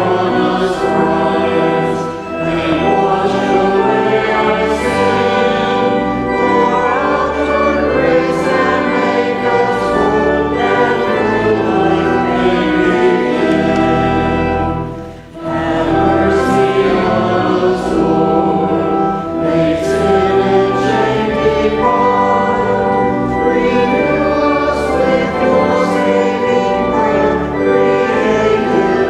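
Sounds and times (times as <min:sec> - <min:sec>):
group singing a hymn: 0:00.0 - 0:29.0
sustained accompaniment: 0:00.0 - 0:29.0.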